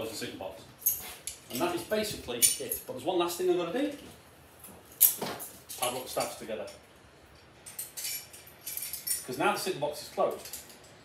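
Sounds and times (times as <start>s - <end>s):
metal staffs clinking: 0.8s - 3.0s.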